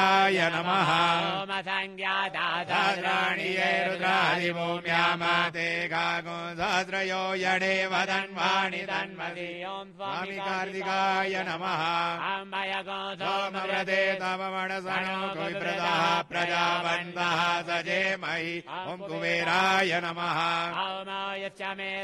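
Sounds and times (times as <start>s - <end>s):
melodic chanting: 0.0s - 22.0s.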